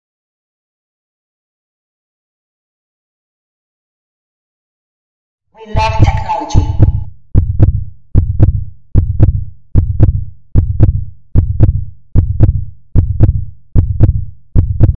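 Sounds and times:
heartbeat thumps: 5.8 - 15.0.

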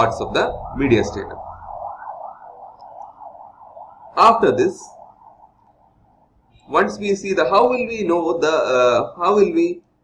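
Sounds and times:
siren-like warbling tone: 0.0 - 9.2.

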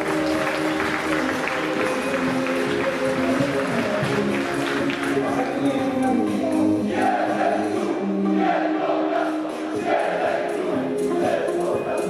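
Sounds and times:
steady clapping: 0.0 - 5.6
group chanting: 6.8 - 11.7.

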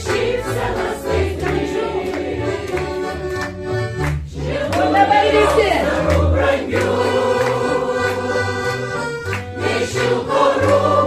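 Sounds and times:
mixed choir singing: 0.0 - 3.3, 4.3 - 11.0
piano accordion: 0.0 - 11.0.

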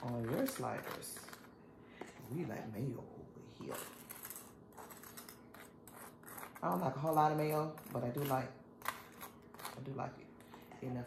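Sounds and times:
utensil scraping and dabbing: 0.0 - 1.6, 3.6 - 9.9.

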